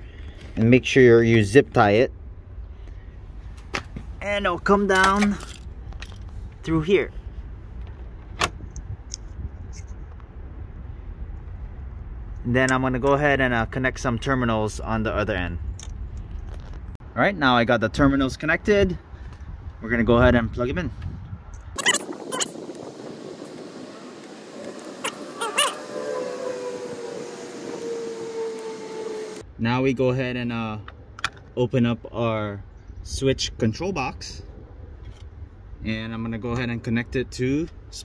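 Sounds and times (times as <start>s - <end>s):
faint tone dropping in pitch: 23.3s - 29.4s.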